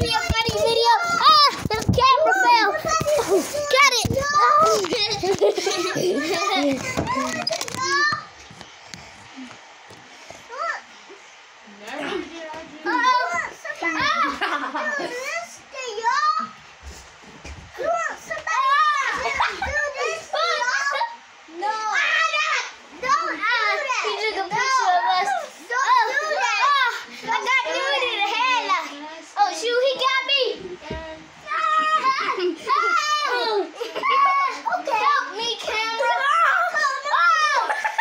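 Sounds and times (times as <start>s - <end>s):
children yelling and laughing: 0.0s - 8.4s, 10.4s - 11.3s, 11.9s - 16.6s, 17.7s - 38.0s.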